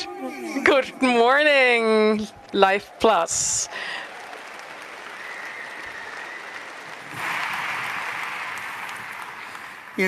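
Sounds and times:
large audience applauding: 0.0 - 10.0.

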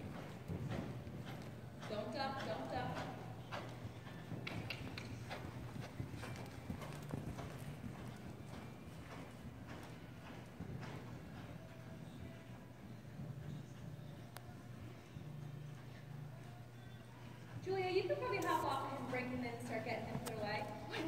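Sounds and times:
horse hoofbeats on sand: 0.0 - 21.0.

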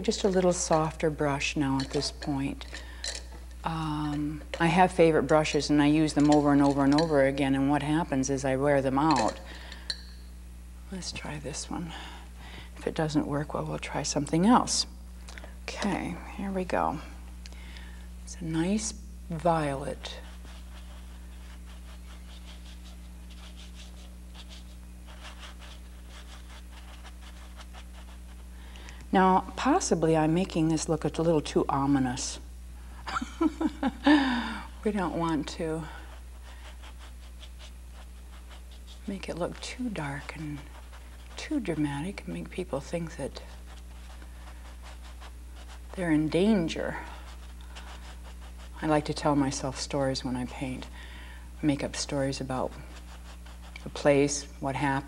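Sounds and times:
low electrical hum: 0.0 - 55.0
paintbrush scrubbing on canvas: 19.4 - 28.6, 34.9 - 49.8, 51.8 - 54.5.

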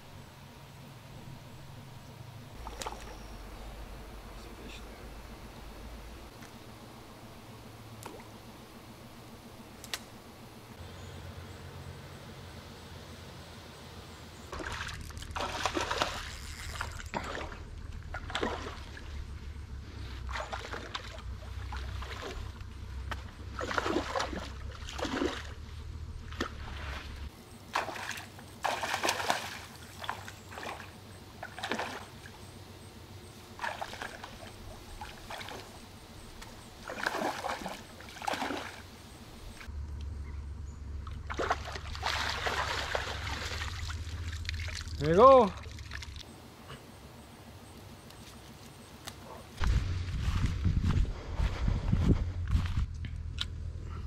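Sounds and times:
fish splashing in water: 14.5 - 19.3, 20.2 - 32.4, 33.5 - 39.7, 41.0 - 45.0, 45.6 - 46.2.

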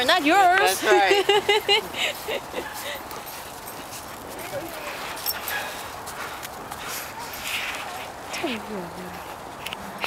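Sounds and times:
footsteps crunching on snow: 1.5 - 10.0.

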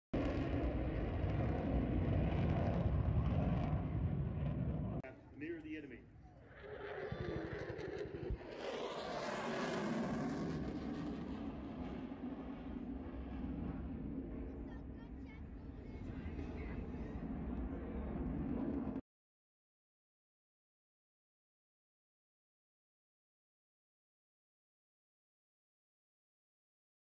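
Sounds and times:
deep explosion rumble: 0.2 - 5.1, 6.3 - 19.0.

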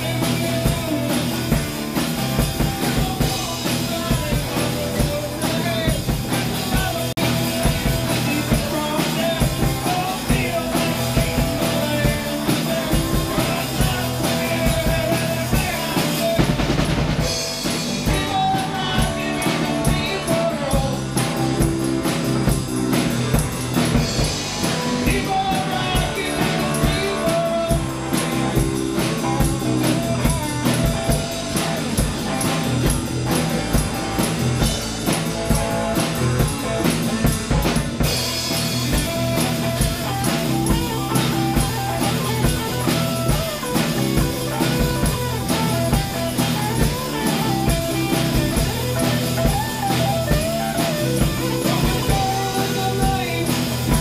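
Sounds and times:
man singing: 0.0 - 34.7, 35.5 - 54.0
electric bass: 0.0 - 54.0
tambourine: 0.0 - 54.0.

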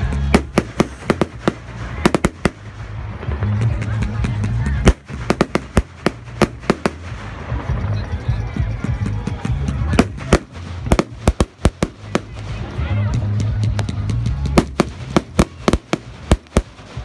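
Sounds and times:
fireworks bangs and crackles: 0.0 - 17.0
low rumble: 0.0 - 17.0.

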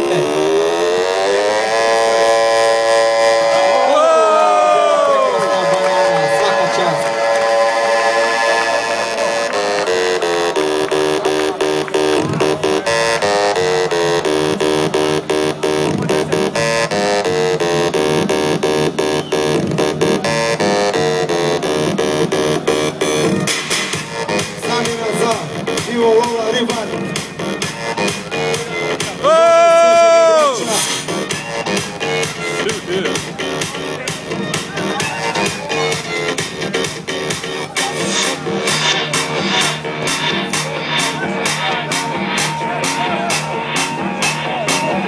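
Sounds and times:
electronic synthesizer music: 0.0 - 45.0.

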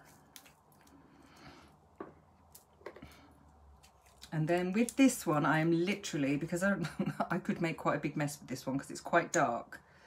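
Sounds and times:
soft squishy tube handling: 0.0 - 1.1, 1.9 - 5.0.

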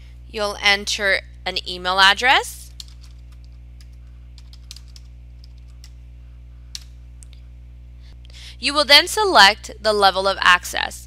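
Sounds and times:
steady low hum: 0.0 - 11.0
keyboard typing: 2.7 - 6.0.

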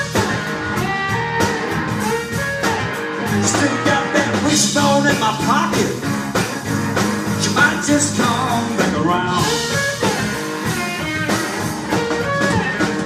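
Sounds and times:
bass guitar: 0.0 - 13.0
drum kit: 0.0 - 13.0
electric guitar: 0.0 - 13.0.

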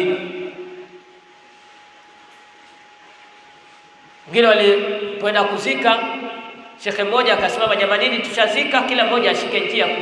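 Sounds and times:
faint steady hiss: 0.1 - 8.9
man's voice: 4.3 - 10.0.

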